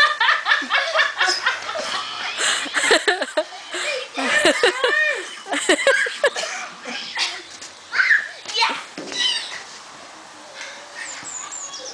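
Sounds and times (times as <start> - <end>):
young children calling and squealing: 1.3 - 11.9.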